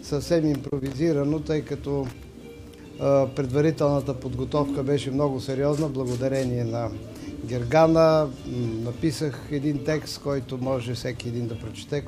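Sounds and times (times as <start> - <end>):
man speaking: 0.0 - 2.2, 3.0 - 12.0.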